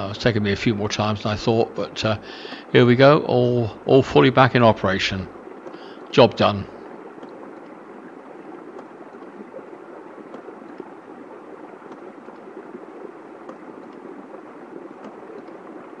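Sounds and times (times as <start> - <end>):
faint ticks: 1.6 - 2.8, 4.8 - 16.0.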